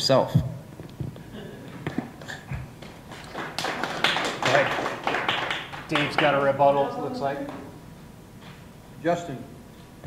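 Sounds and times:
audience applauding: 1.8s - 7.8s.

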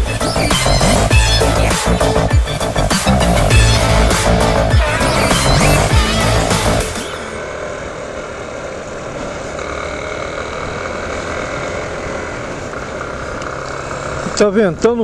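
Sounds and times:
electronic music with heavy beat: 0.0s - 7.3s
motorcycle engine running: 0.0s - 15.0s.

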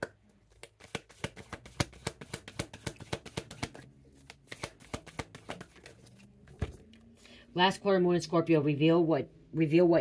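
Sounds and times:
cards being shuffled: 0.5s - 7.1s.

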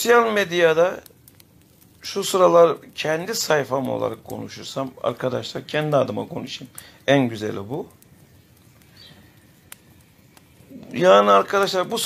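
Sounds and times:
man talking: 0.0s - 1.1s, 2.0s - 7.9s, 10.7s - 12.0s
faint room hiss: 0.0s - 12.0s.

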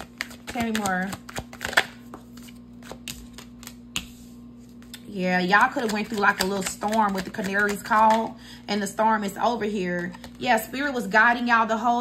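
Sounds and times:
cards shuffling: 0.0s - 5.0s, 5.6s - 8.3s.

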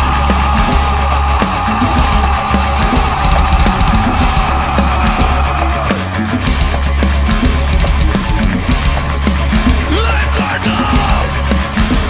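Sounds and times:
rock metal instrumental: 0.0s - 12.0s.

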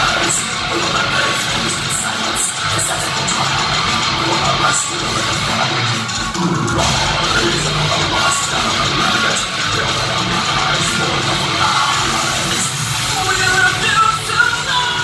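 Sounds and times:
metal band playing live: 0.0s - 15.0s.

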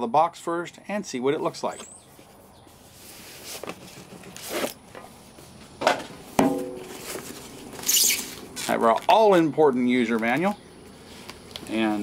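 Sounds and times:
cardboard sleeve sliding off box: 2.9s - 4.8s.

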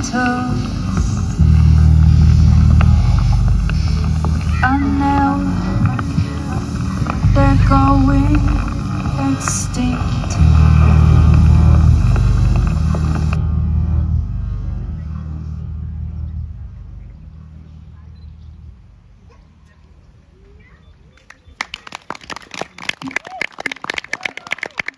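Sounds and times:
low musical drone: 0.0s - 19.4s
audience applauding: 21.2s - 24.9s.

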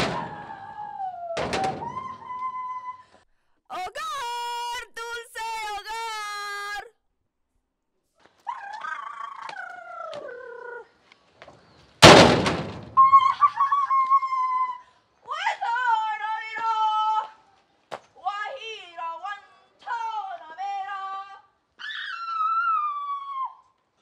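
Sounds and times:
loud bang: 0.0s - 0.8s, 1.4s - 2.2s, 12.0s - 13.1s.

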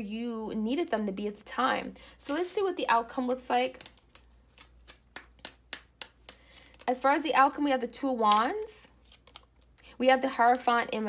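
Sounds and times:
cards being shuffled: 2.2s - 7.2s, 8.2s - 10.7s.

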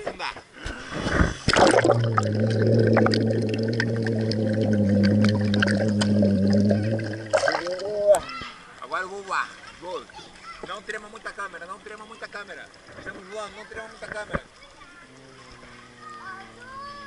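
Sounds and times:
faint bubbling: 0.6s - 8.4s, 11.2s - 17.0s
water churning and gurgling: 0.6s - 17.0s
water splash: 0.9s - 8.2s
muffled underwater hum: 1.6s - 7.7s.

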